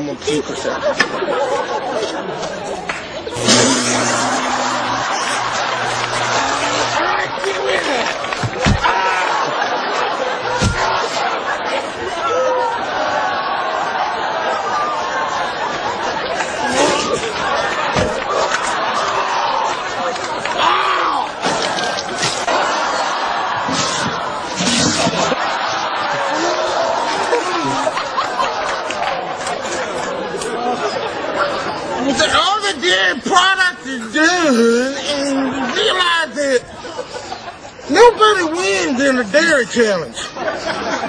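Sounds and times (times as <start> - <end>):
overlapping chatter: 0.0 - 41.0
people talking and shouting: 0.0 - 41.0.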